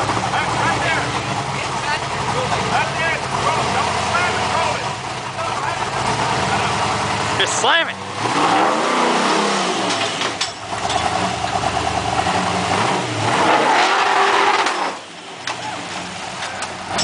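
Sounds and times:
engine revving hard: 0:02.2 - 0:05.0, 0:05.6 - 0:15.1.

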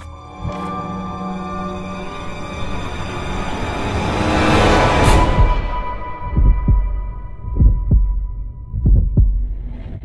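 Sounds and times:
heartbeat double thumps: 0:06.2 - 0:10.0.

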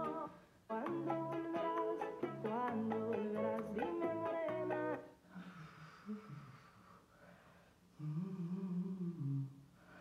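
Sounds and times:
person humming a low melody: 0:08.0 - 0:09.6.

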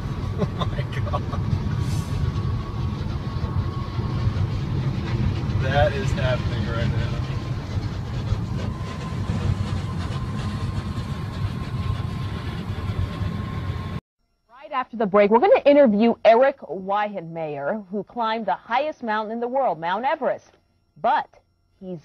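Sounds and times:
car road and engine rumble: 0:00.0 - 0:09.7
thin steady whine: 0:00.0 - 0:22.0.

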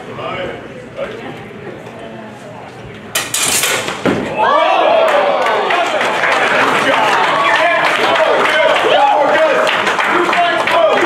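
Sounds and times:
swords clashing: 0:03.2 - 0:04.1
loud drawn-out shout: 0:04.3 - 0:11.0.

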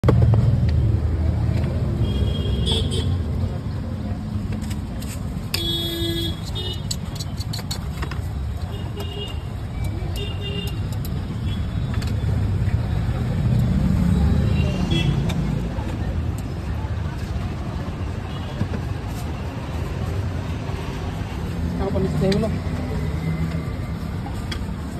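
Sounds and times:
traffic rumble: 0:00.0 - 0:24.9.

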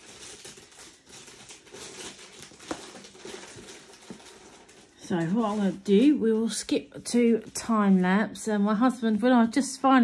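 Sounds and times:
tape backing paper crinkling: 0:00.0 - 0:08.5.

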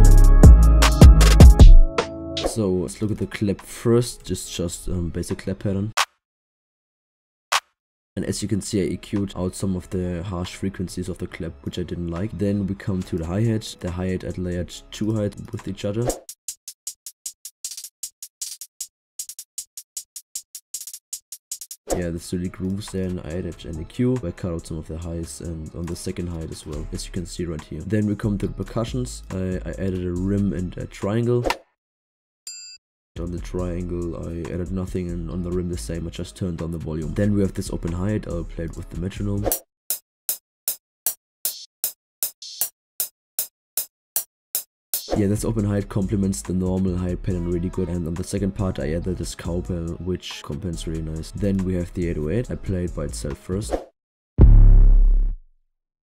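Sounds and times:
hi-hat ticks: 0:16.2 - 0:21.8.

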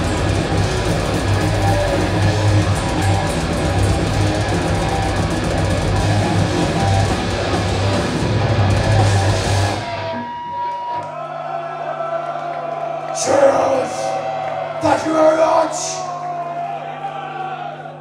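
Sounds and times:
death metal band playing live: 0:00.0 - 0:10.5.

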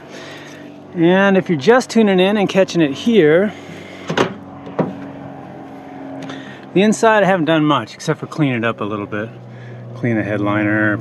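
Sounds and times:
car door swinging open: 0:04.0 - 0:05.1.

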